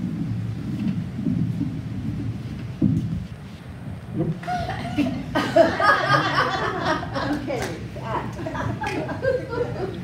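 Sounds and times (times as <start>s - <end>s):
microphone handling rumble: 0.0s - 5.3s.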